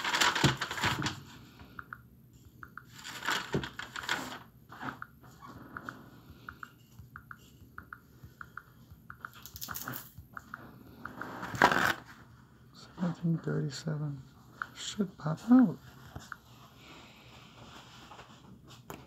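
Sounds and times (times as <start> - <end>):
fingers tapping phone screen: 5.0 - 11.2.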